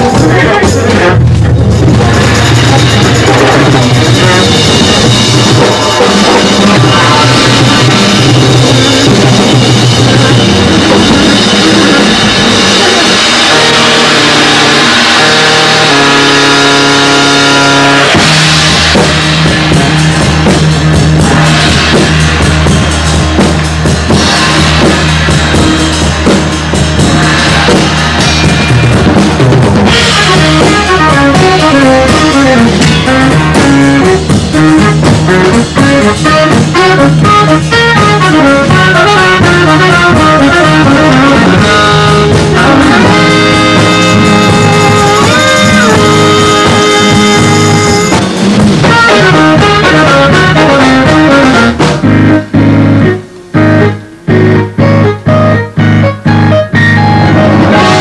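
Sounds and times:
drum kit: 0:00.0 - 0:58.0
quick melody notes: 0:00.0 - 0:58.0
rock band playing: 0:00.0 - 0:58.0.

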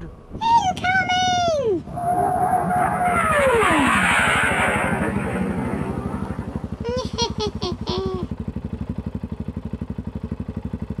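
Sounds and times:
small motorcycle engine idling: 0:05.4 - 0:11.0.

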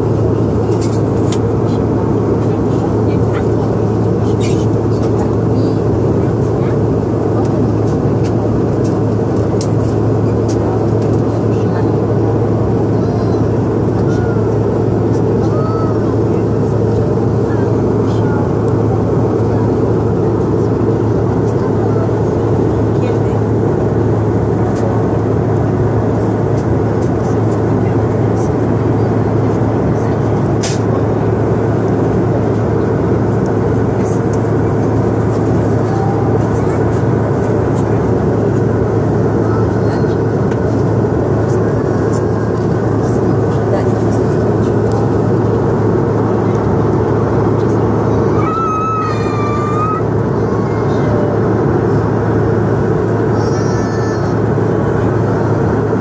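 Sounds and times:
airliner cabin engine noise: 0:00.0 - 0:56.0.

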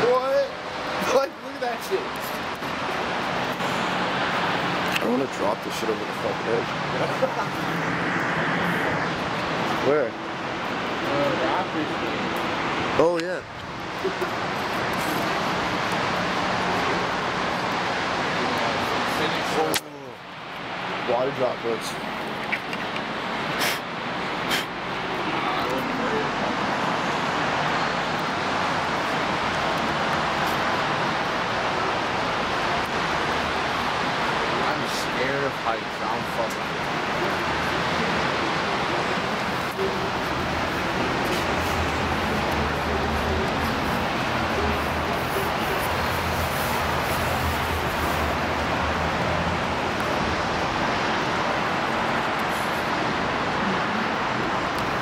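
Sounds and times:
city traffic noise: 0:00.0 - 0:55.0.

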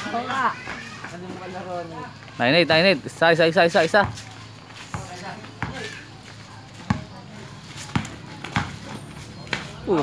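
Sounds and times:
basketball bouncing on concrete: 0:03.8 - 0:09.8.

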